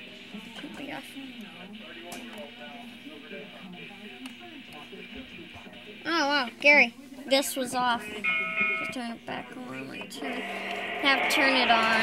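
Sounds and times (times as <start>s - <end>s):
muffled television speech: 0.0s - 12.0s.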